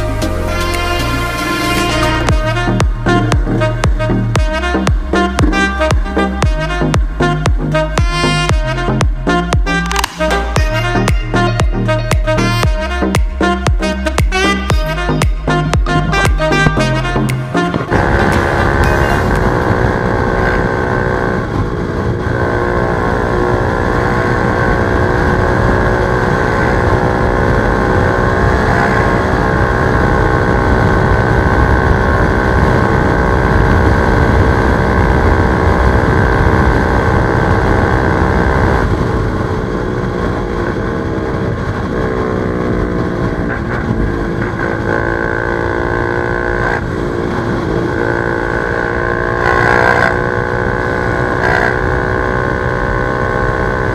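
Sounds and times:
motorcycle engine running hard: 1.2 - 53.9
wind rush on microphone: 17.7 - 45.4, 46.2 - 53.9.

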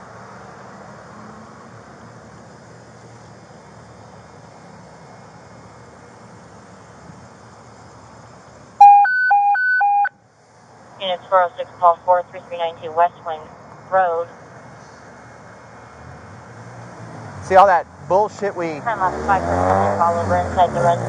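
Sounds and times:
faint street noise: 0.0 - 21.0.

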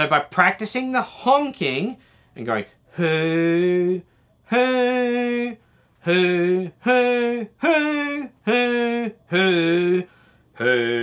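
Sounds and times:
man singing hoo notes: 0.0 - 11.0.

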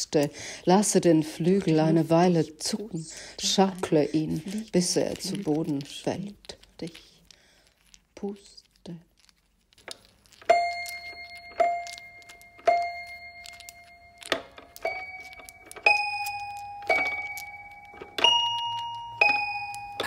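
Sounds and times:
toy piano notes: 10.5 - 20.0.

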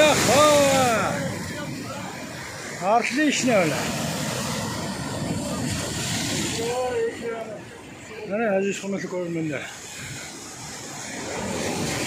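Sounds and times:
waves breaking on boulders: 0.0 - 12.0.

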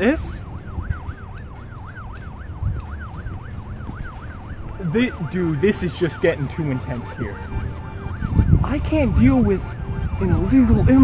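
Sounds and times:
police siren yelping: 0.0 - 11.0.

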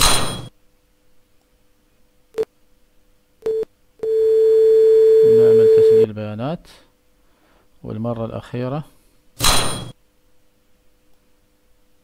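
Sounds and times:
faint steady tone hum: 0.0 - 12.0.

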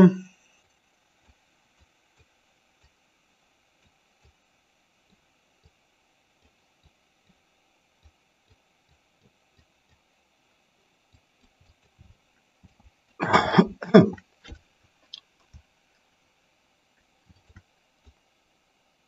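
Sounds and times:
person clearing throat: 0.0 - 0.3, 13.2 - 14.2.

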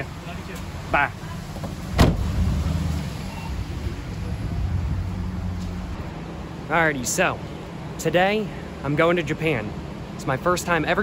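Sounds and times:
car rumble: 0.0 - 10.2
sharp thump: 2.0 - 2.3.

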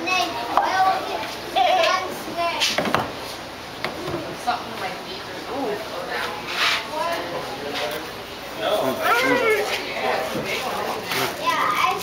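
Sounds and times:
excited children's voices: 0.0 - 2.8, 9.0 - 9.8, 11.3 - 12.0
child squealing: 9.0 - 9.7.

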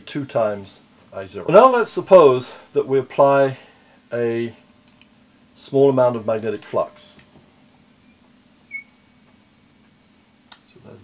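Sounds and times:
marker squeaking on whiteboard: 8.7 - 9.0.

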